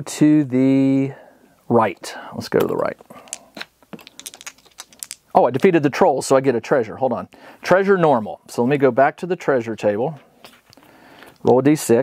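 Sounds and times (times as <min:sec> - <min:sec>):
plastic dice clicking: 0:03.3 - 0:05.7.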